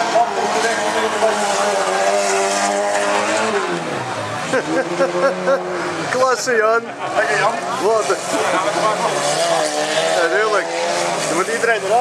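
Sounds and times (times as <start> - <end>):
man talking over loudspeakers: 0.0 - 2.2, 10.1 - 12.0
race car engines running hard: 0.0 - 12.0.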